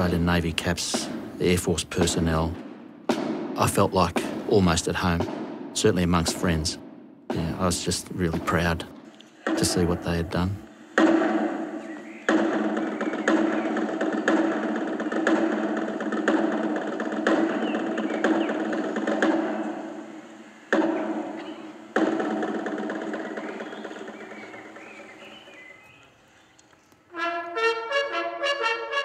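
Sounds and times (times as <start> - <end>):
sharp drum beat: 0.0 - 20.0
military drum roll: 0.0 - 25.3.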